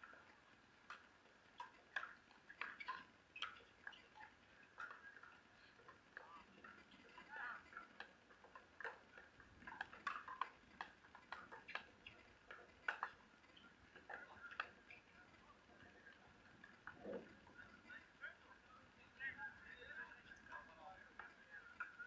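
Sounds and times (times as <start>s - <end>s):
paddles hitting plastic ball: 6.7s - 15.0s.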